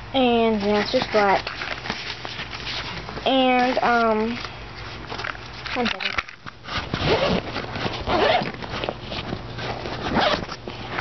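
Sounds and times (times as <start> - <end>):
metal zipper being pulled open: 6.7 - 8.9, 10.0 - 10.5.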